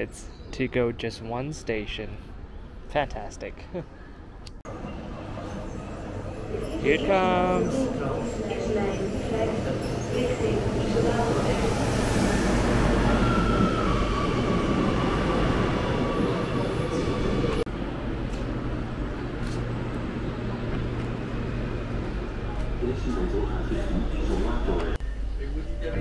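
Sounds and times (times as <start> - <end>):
train drive and brakes whining: 4.7 - 25.0
low hum inside train car: 17.5 - 26.0.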